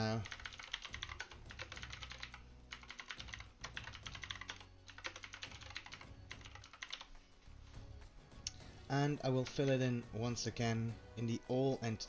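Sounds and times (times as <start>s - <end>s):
typing on computer keyboard: 0.0s - 7.2s.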